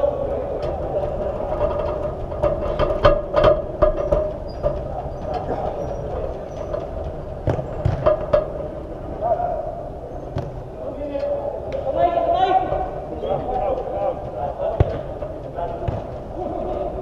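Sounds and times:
football thuds: 7.4 - 8.5, 10.3 - 10.7, 14.6 - 16.3.

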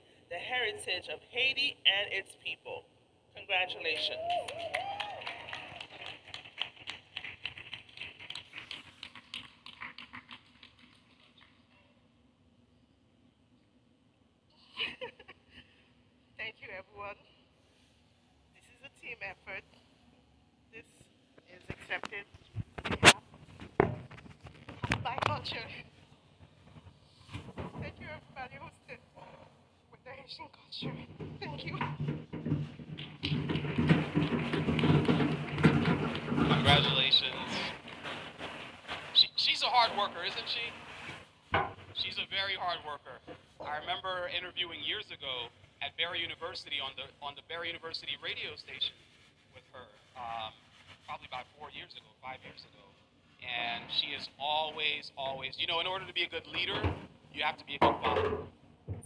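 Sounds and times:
audience applause: 4.0 - 10.6.

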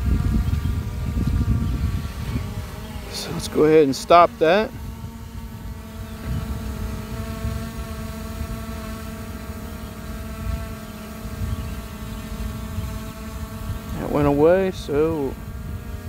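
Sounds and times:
drone propeller hum: 0.0 - 16.0
wind rumbling on microphone: 0.0 - 16.0.

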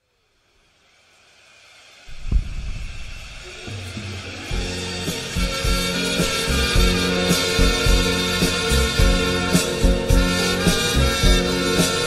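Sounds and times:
rising hiss swell: 1.3 - 6.7
bass and drum hits: 2.1 - 12.0.

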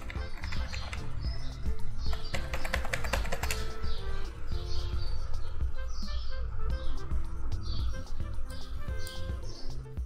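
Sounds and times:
quick run of clicks: 0.0 - 1.3, 2.0 - 3.8
background music with bass line: 0.0 - 10.0.

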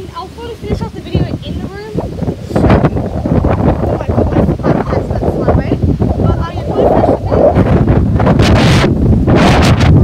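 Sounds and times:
rushing wind gust: 0.0 - 10.0
wind buffeting microphone: 0.0 - 10.0.

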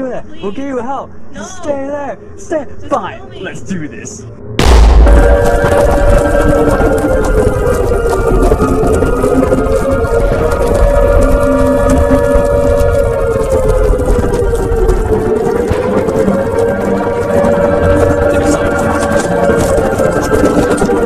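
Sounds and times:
eerie electronic drone: 3.5 - 21.0
low rumble: 4.2 - 21.0.

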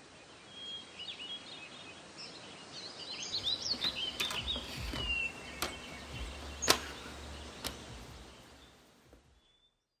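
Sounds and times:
faint background hiss: 0.0 - 10.0
sharp clicks: 3.8 - 8.0.

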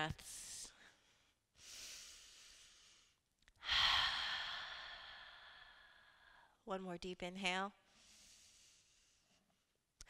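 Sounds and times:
woman breathing in: 0.8 - 6.6, 7.9 - 9.5
woman breathing out slowly: 0.8 - 6.6.

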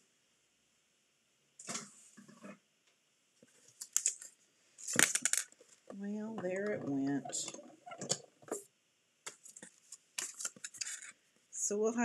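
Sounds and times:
paper and plastic rustles and scrapes: 9.3 - 11.2.

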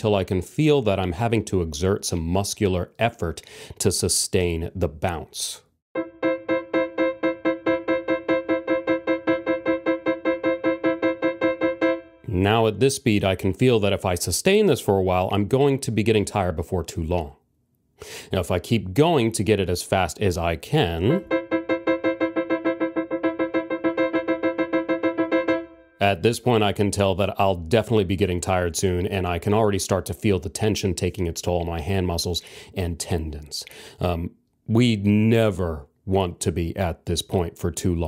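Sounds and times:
piano repeating staccato notes: 6.0 - 12.3, 21.2 - 26.0.

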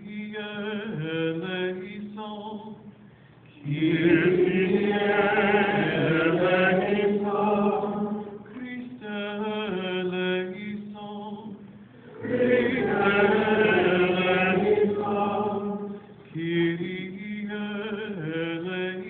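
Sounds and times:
group of voices chanting: 12.1 - 16.0.

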